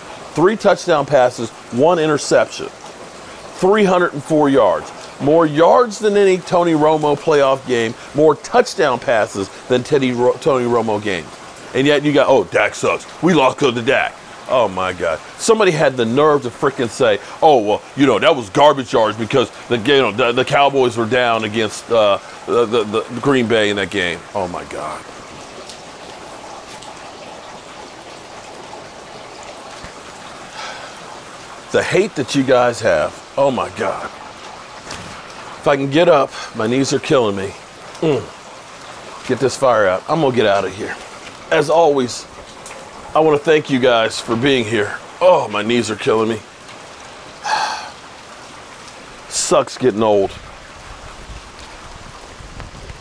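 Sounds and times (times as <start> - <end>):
steady rain hiss: 0.0 - 53.0.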